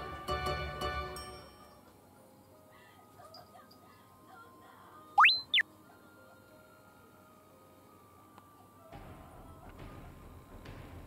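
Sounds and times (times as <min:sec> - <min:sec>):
faint background music: 0:00.0 - 0:11.0
comic slide whistle: 0:05.2 - 0:05.6.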